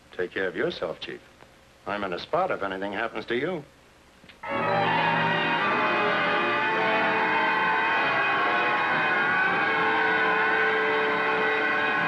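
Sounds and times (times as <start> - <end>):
held orchestral chord: 4.4 - 12.0
sirens wailing: 4.4 - 12.0.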